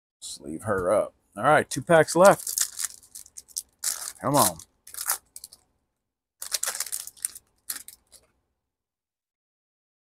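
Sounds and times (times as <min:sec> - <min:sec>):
foil wrapper crinkling: 0:02.1 - 0:05.6, 0:06.4 - 0:08.3.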